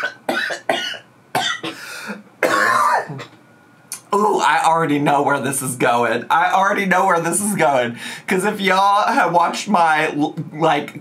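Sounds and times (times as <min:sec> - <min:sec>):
man coughing: 0:00.0 - 0:03.4.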